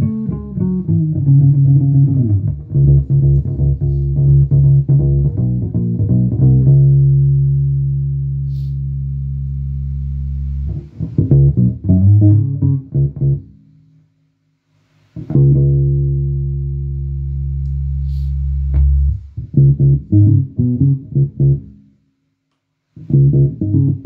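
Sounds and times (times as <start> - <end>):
electric bass plucked notes: 0.0 - 13.6, 15.2 - 21.8, 23.0 - 24.0.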